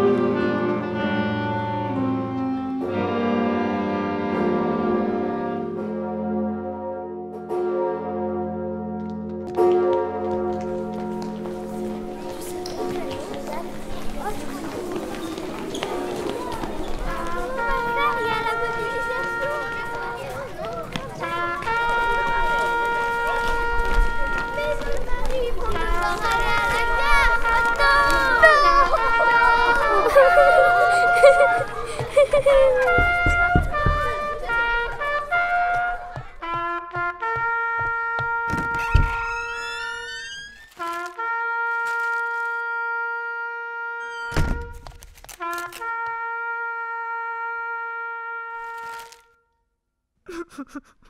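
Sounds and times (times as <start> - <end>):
indistinct voices talking: 10.7 - 36.8
held musical note: 17.0 - 41.8
thump: 44.3 - 45.0.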